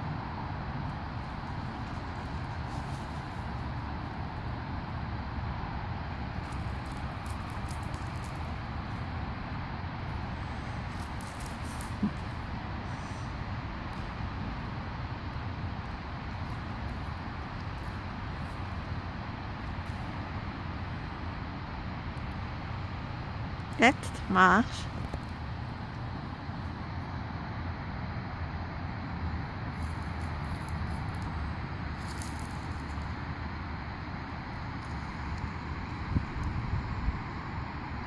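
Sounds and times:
outdoor background noise: 0.0 - 38.0.

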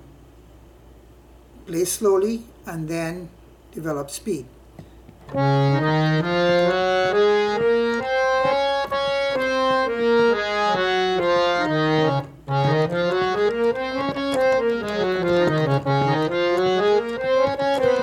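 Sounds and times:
harmonium playing a scale: 5.3 - 18.0.

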